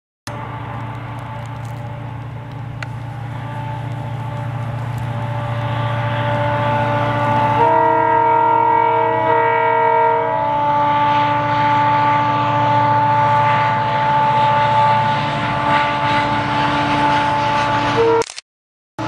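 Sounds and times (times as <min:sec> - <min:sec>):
locomotive horn blast: 0:00.3 - 0:18.3
diesel locomotive engine whine: 0:00.3 - 0:18.4.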